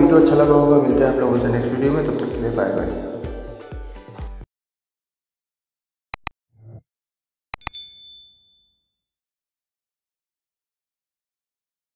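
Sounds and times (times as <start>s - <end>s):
mouse click sound effects: 7.6s - 7.8s
bright bell ding: 7.6s - 8.9s.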